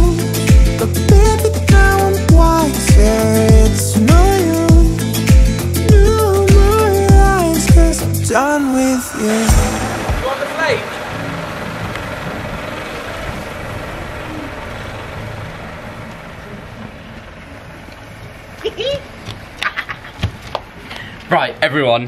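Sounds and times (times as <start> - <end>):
pop song with singing: 0.0 - 10.8
steady even noise: 7.8 - 16.0.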